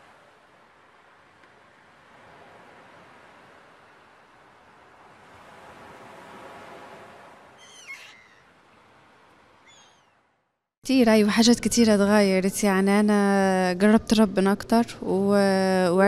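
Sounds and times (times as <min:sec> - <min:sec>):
faint rushing ambience: 0:00.0 - 0:07.6
high wavering bird-like call: 0:07.6 - 0:08.5, 0:09.6 - 0:10.2
small chirp: 0:07.6 - 0:08.5, 0:09.6 - 0:10.3.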